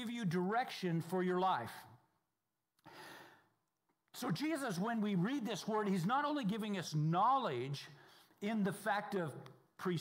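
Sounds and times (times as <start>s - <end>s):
man's short breath: 2.8s - 3.6s.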